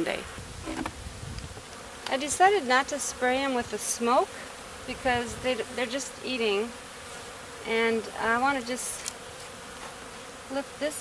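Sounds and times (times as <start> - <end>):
bees buzzing: 0.0 - 11.0.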